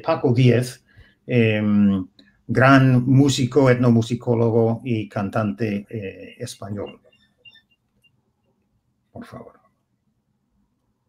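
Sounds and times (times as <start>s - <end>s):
faint high-pitched blips: 6.5s - 8.6s.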